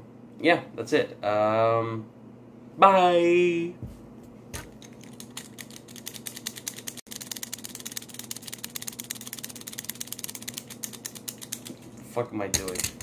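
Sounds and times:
toy ratchet clicking: 4.9s - 11.7s.

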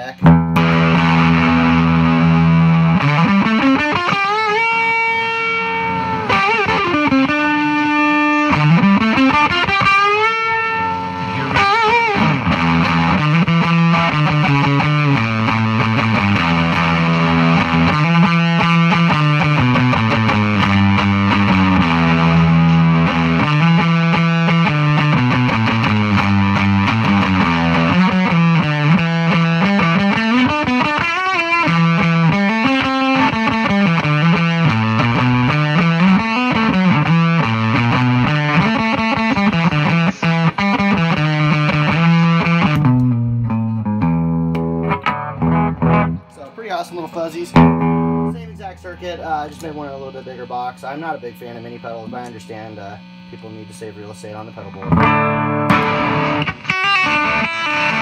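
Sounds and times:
fuzz electric guitar: 0.0s - 58.0s.

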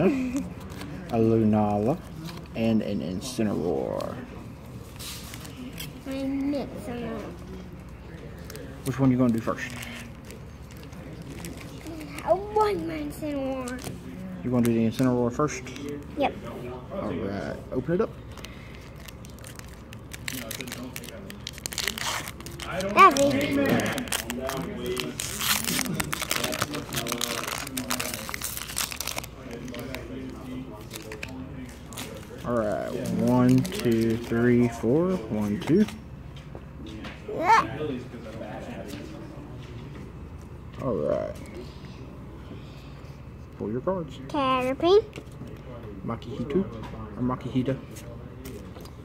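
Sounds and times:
foil wrapper crinkling: 18.3s - 34.6s.

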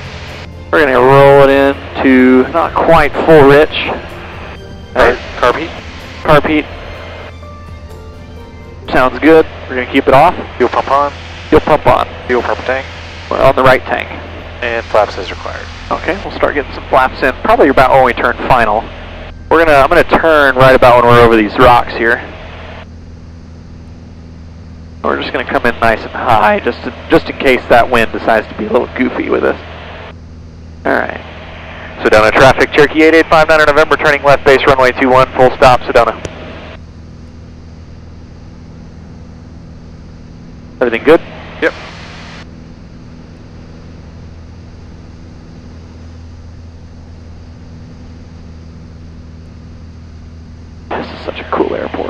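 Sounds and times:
airplane engine cockpit drone: 0.0s - 52.0s.

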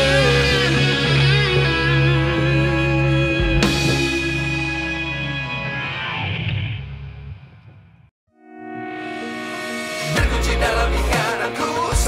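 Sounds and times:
music with held notes: 0.0s - 5.9s
distorted electric guitar chord: 0.0s - 7.6s.

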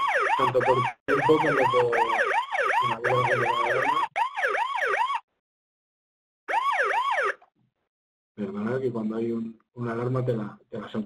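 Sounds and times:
siren-like alarm wail: 0.0s - 5.3s, 6.5s - 7.4s.

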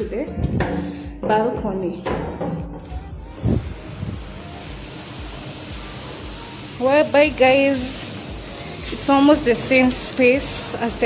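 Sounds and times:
urban street ambience hiss: 3.4s - 11.0s.

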